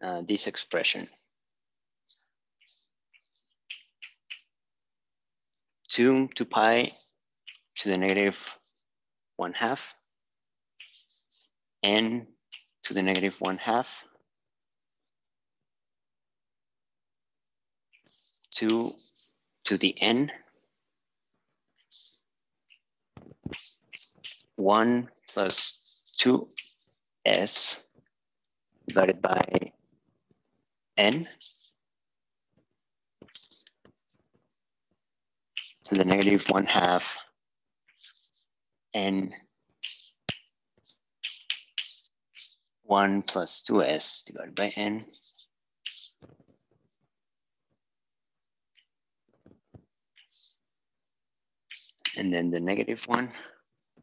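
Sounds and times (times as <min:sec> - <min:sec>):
chalk writing on chalkboard: 0:10.8 - 0:11.5, 0:23.5 - 0:24.4, 0:33.2 - 0:34.0, 0:37.9 - 0:38.5.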